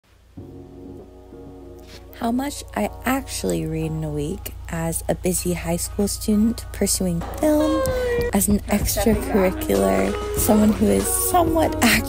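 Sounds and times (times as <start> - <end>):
background music low notes: 0.1 - 12.0.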